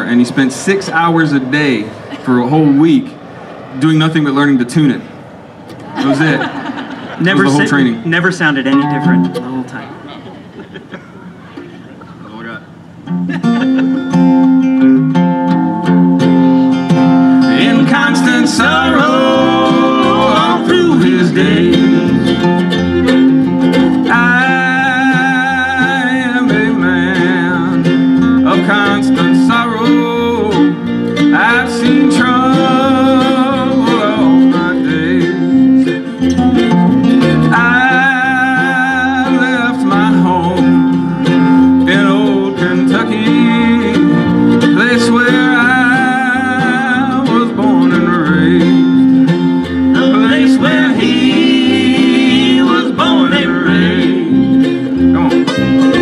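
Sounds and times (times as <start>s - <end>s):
acoustic guitar: 0.0s - 56.0s
electric bass: 7.1s - 10.0s, 11.3s - 56.0s
fiddle melody: 7.2s - 10.1s, 12.9s - 56.0s
small plucked-string instrument: 8.7s - 9.8s, 13.0s - 56.0s.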